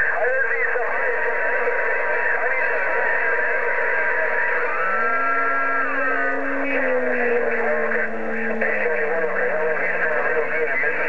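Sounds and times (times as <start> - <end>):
garbled radio voices: 0.0 - 11.0
radio static: 0.0 - 11.0
steady whistle: 2.5 - 10.2
sliding whistles: 4.4 - 8.8.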